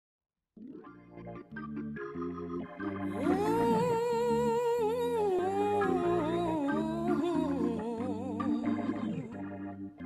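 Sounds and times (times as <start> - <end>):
keyboard chords: 0.6 - 10.0
person singing long wordless note: 3.1 - 9.4.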